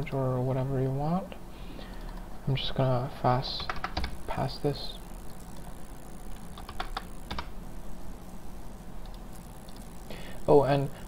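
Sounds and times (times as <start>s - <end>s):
low steady hum: 0.0s - 11.0s
computer keyboard keystrokes: 3.6s - 4.1s, 6.6s - 7.5s.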